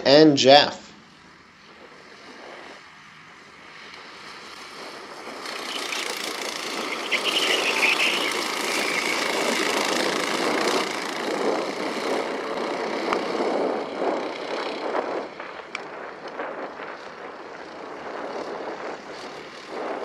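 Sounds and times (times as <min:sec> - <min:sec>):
go-kart engines passing: 0:03.7 - 0:15.6.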